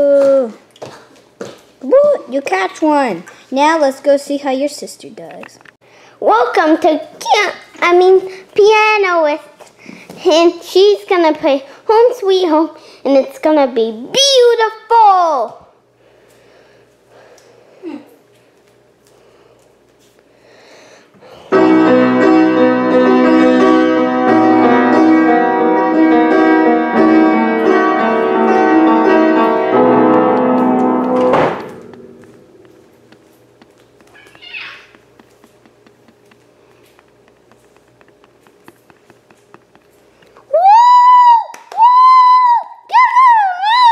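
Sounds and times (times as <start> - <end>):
piano tune: 21.5 - 33.1.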